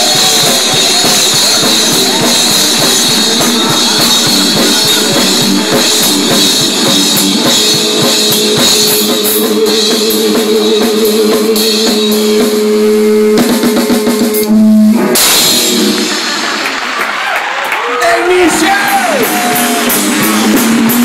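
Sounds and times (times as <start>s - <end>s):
electric guitar sustained note: 0.0s - 16.5s
drum kit with cymbals: 0.0s - 17.3s, 18.2s - 21.0s.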